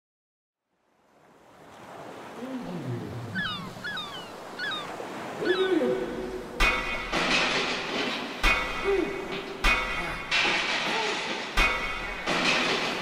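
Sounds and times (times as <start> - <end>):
ocean surf: 0.8 - 13.0
lower gliding calls: 2.3 - 6.6
swooping bird-like chirps: 3.3 - 5.8.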